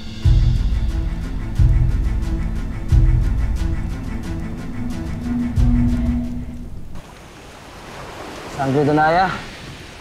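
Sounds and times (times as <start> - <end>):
sea surf on a beach: 7.0 - 10.0.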